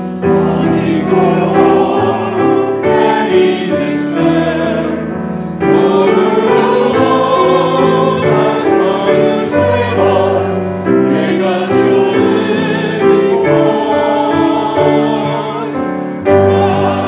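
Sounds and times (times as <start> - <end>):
congregation and choir singing hymn: 0.0 - 17.0
instrumental accompaniment: 0.0 - 17.0.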